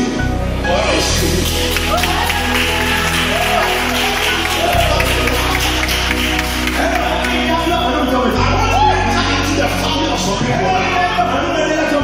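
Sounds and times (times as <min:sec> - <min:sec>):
sustained low bass notes: 0:00.0 - 0:12.0.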